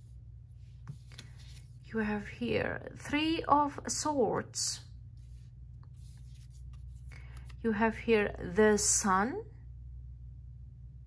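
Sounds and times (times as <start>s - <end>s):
low steady hum: 0.0s - 11.0s
cards sliding on tabletop: 0.7s - 1.8s.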